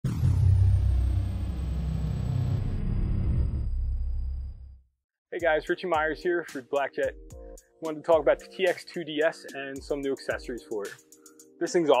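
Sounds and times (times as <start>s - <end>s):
deep rumble: 0.0s - 4.8s
high tone sliding down: 0.0s - 4.8s.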